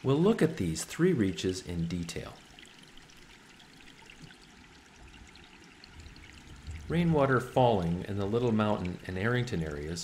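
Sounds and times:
creek water running: 0.0 - 10.0.

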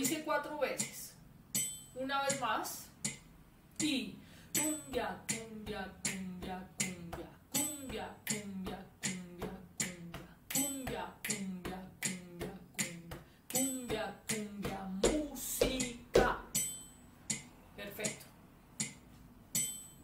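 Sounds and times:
hand clicks body percussion: 1.6 - 20.0.

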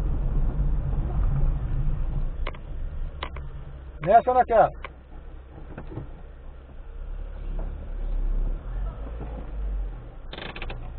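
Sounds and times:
car engine idling: 0.0 - 10.9.

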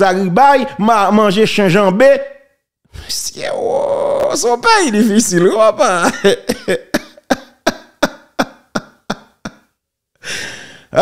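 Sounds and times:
person laughing: 4.8 - 9.8.

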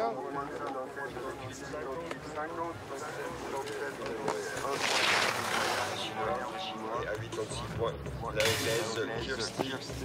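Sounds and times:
voices: 0.0 - 10.0
skis sliding over snow: 3.0 - 6.3.

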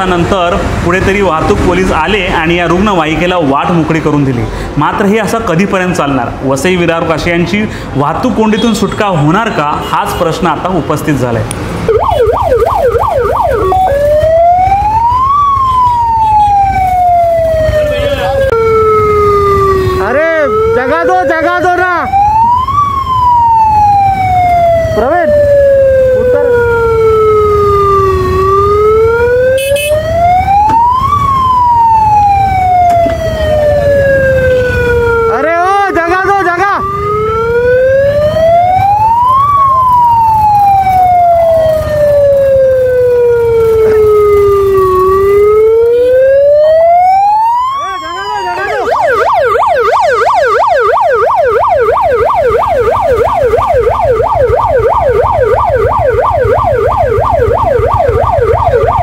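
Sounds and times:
low traffic rumble: 0.0 - 59.0
ambulance siren wailing: 8.2 - 59.0.

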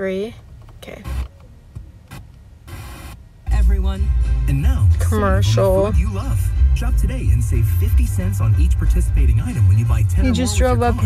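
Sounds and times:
radio tuning noise bursts: 2.1 - 3.2.

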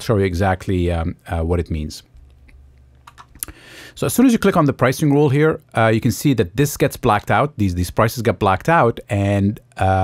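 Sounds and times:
computer mouse clicks: 3.0 - 3.5.

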